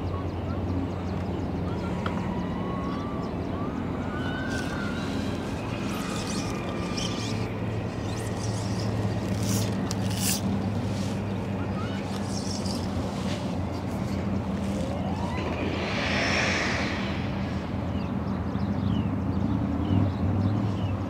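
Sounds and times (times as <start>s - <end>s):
boat motor humming: 2.8s - 15.3s
brief hiss: 15.2s - 18.3s.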